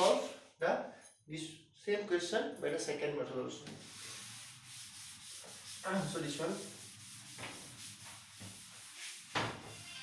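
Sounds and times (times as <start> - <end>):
duster rubbing on chalkboard: 3.7 - 9.9.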